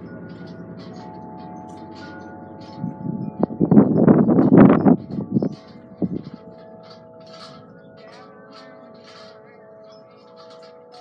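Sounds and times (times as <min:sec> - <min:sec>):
wind chimes ringing: 0:00.0 - 0:11.0.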